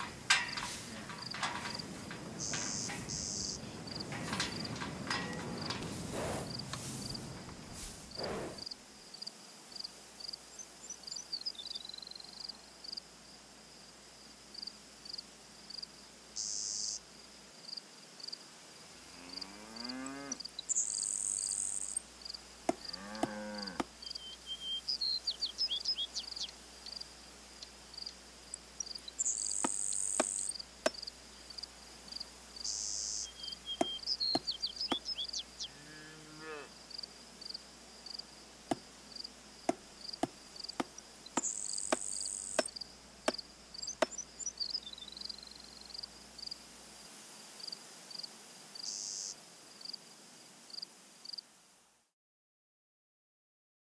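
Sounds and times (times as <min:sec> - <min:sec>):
cow lowing: 0:00.0 - 0:08.6
crickets chirping: 0:00.0 - 0:51.4
insect buzzes: 0:00.0 - 0:51.8.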